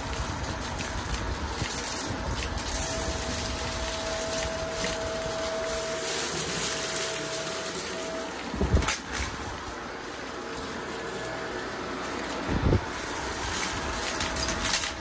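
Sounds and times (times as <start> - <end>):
steady whine: 0.0 - 15.0
vacuum cleaner on carpet: 0.0 - 15.0.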